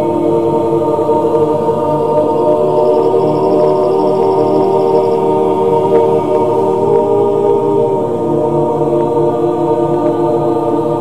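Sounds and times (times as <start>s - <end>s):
mixed choir chanting: 0.0s - 11.0s.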